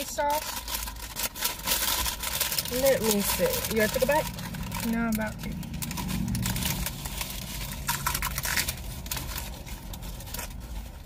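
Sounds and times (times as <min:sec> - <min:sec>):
paper wrappers crinkling: 0:00.0 - 0:11.0
taco shells crunching when chewed: 0:00.6 - 0:11.0.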